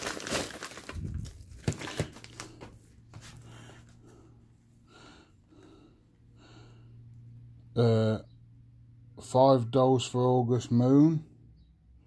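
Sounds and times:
bubble wrap and envelope crinkling: 0.0s - 3.0s.

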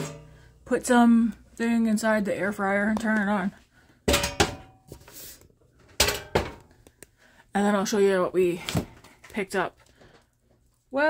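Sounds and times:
kitchen utensils clattering: 0.0s - 0.5s, 4.1s - 5.2s, 5.8s - 6.7s.

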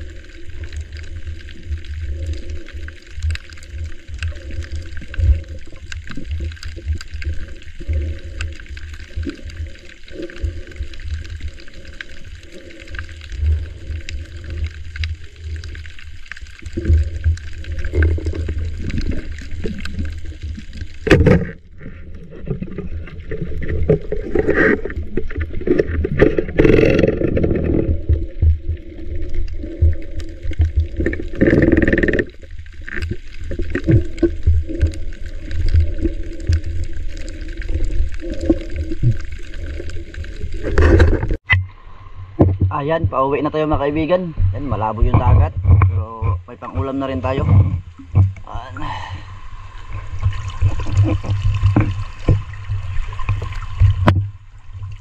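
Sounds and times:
muffled underwater rumble: 0.0s - 55.0s
water gurgling and sloshing: 0.0s - 55.0s.

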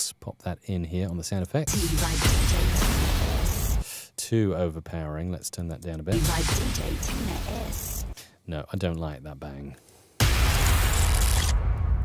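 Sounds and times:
hissing crash: 1.7s - 3.8s, 6.2s - 8.2s, 10.2s - 12.0s
loud boom: 1.7s - 3.8s, 10.2s - 12.0s.

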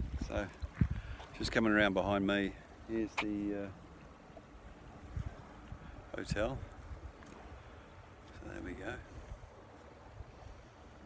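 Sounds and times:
wind buffeting microphone: 0.0s - 4.0s, 4.6s - 11.0s.

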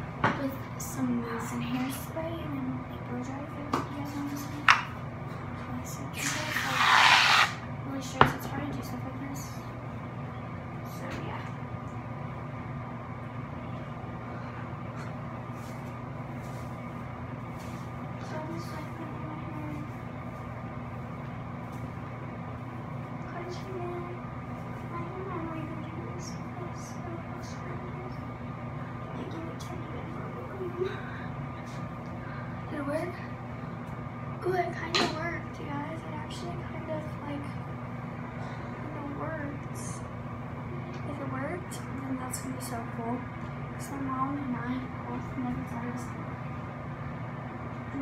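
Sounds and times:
electrical hum: 0.0s - 48.0s.

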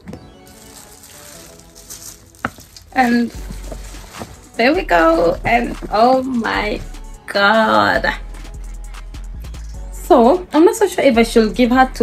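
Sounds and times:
paper bag and plastic rustling: 0.0s - 6.1s.

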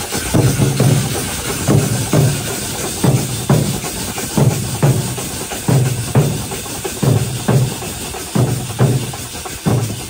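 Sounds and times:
crowd noise: 0.0s - 10.0s
drum troupe playing: 0.0s - 10.0s.

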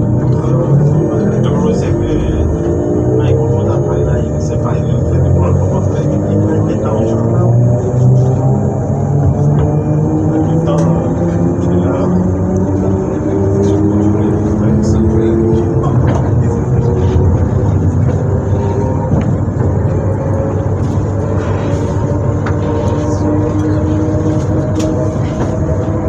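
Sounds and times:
train electrical equipment hum: 0.0s - 26.0s.

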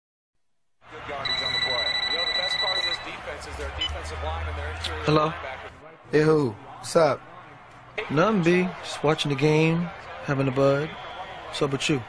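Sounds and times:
telephone ringing: 1.2s - 3.3s.

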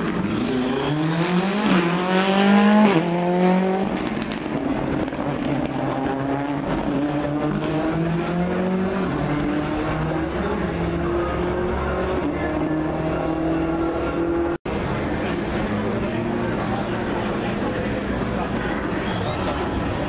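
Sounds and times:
car engine revving through gears: 0.0s - 14.6s.

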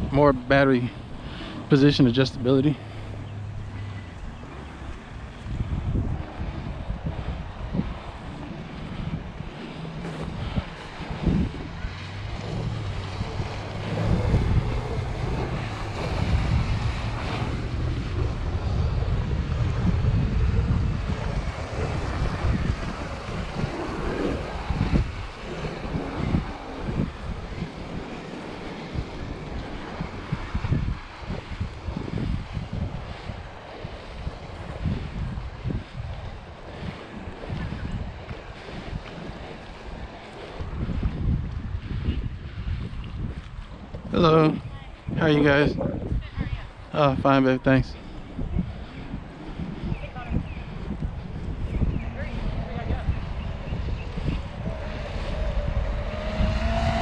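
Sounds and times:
wind buffeting microphone: 0.0s - 57.0s
electric boat motor: 1.0s - 41.2s, 50.7s - 57.0s.

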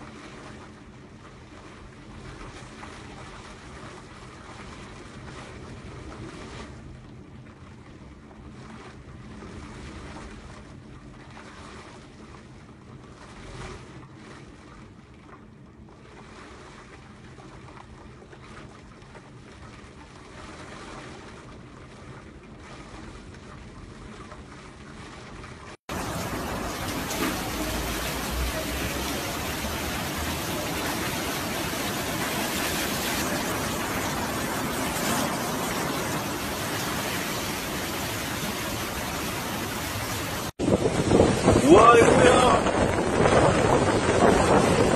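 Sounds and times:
low hum: 0.0s - 41.5s
wind: 0.0s - 44.9s
heavy surf: 25.9s - 44.9s.

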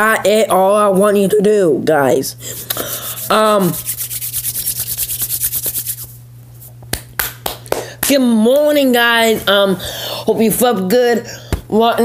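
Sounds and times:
hands rubbing together: 2.5s - 6.8s.

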